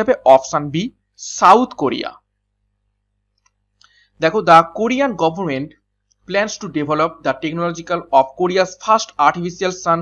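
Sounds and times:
faint clicks: 3.3 - 4.0.

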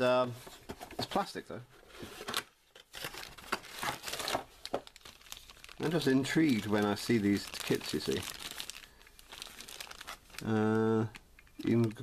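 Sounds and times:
plastic bag crinkling: 2.9 - 12.0.

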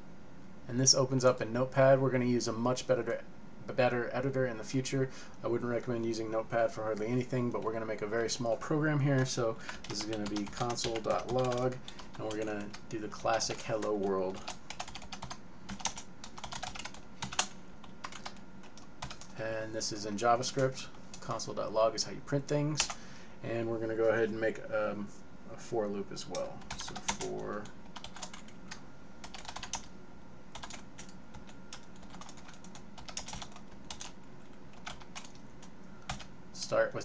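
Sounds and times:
computer keyboard typing: 9.2 - 19.4, 26.3 - 29.9, 30.5 - 36.3.

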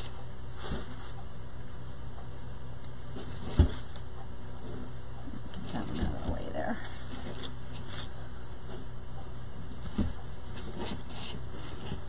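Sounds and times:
faint rustling: 0.0 - 12.0
low background hum: 0.0 - 12.0.

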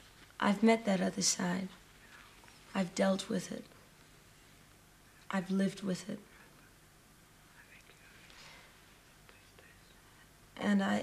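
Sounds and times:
low hiss: 0.0 - 11.0
woman speaking: 0.4 - 1.8, 2.7 - 3.7, 5.3 - 6.2, 10.6 - 11.0
faint breath: 8.3 - 8.8.

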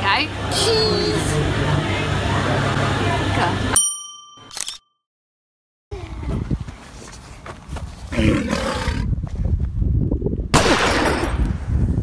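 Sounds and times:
wind buffeting microphone: 5.9 - 12.0.

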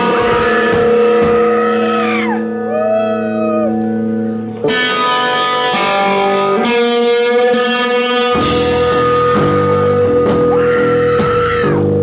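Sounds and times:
electric guitars droning with feedback: 0.0 - 12.0
high wailing guitar tone: 0.0 - 12.0.

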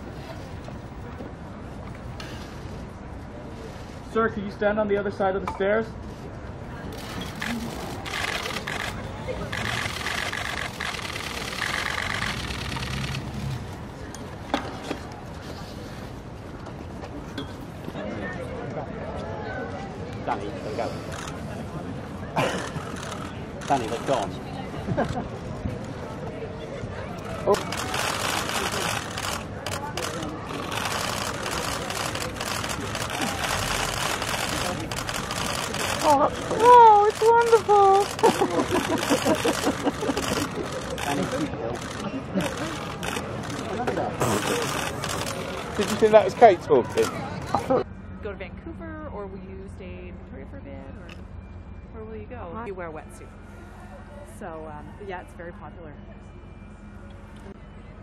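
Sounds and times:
crowd babble: 0.0 - 58.0
murmur of voices: 0.0 - 58.0.

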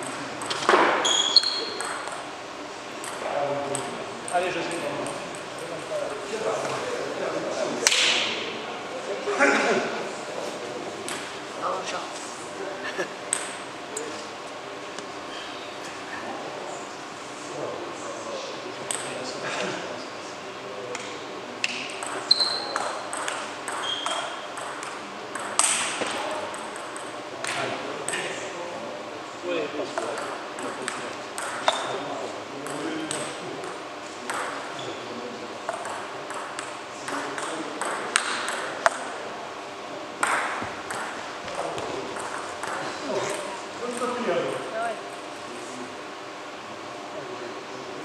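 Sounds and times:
table tennis ball pinging: 0.4 - 2.3, 3.0 - 3.9, 21.6 - 27.6, 30.0 - 32.0, 32.6 - 34.6, 35.7 - 39.1, 40.2 - 41.2, 42.2 - 43.4
pings from nearby tables: 1.0 - 2.0, 22.2 - 23.0, 23.7 - 24.5.

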